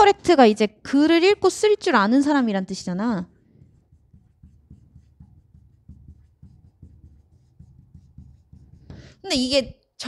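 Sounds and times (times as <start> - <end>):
marker writing on whiteboard: 3.2 - 9.7.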